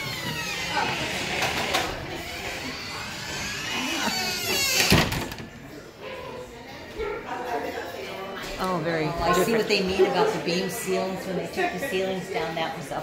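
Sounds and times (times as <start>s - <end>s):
door hinges squealing: 0.0s - 5.4s.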